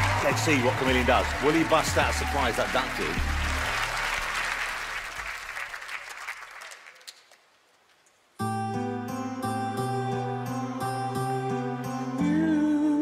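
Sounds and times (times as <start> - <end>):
song backing music: 0.0 - 4.4, 8.4 - 13.0
audience applause: 0.0 - 7.5.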